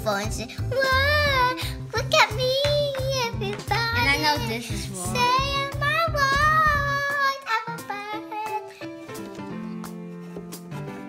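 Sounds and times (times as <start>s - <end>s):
background music with a beat: 0.0s - 11.0s.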